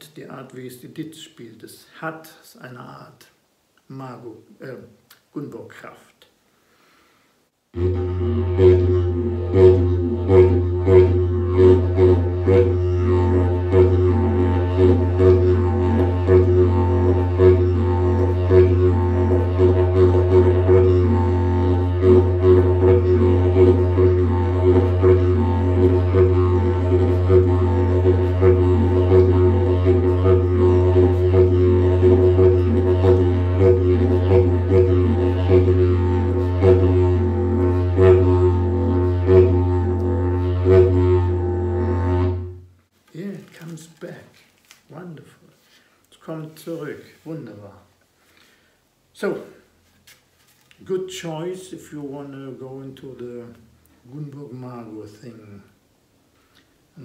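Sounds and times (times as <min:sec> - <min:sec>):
didgeridoo drone with rhythmic accents: 0:07.7 - 0:42.8.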